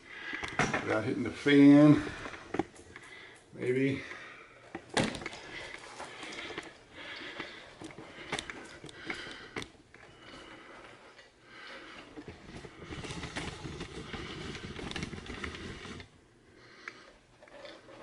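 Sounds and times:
handling rustling: 0.5s - 16.2s.

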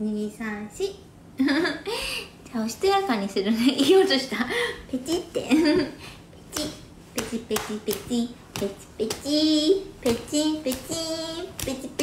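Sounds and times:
woman singing: 4.9s - 12.0s.

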